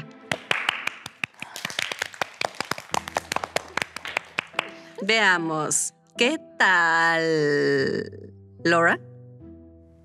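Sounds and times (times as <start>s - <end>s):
small group applauding: 0.2s - 5.0s.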